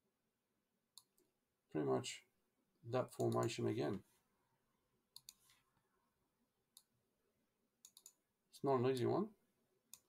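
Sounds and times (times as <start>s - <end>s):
faint computer mouse clicks: 5.1s - 5.6s, 7.8s - 8.2s.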